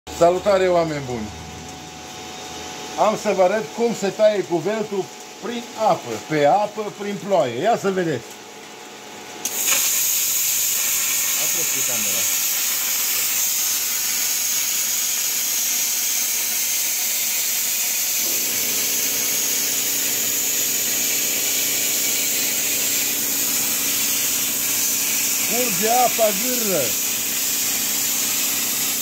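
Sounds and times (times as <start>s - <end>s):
plasma cutter hissing: 9.4s - 29.0s.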